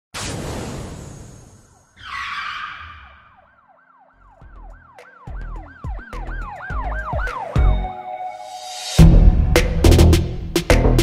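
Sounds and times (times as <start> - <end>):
siren-like wail: 1.9 - 8.0.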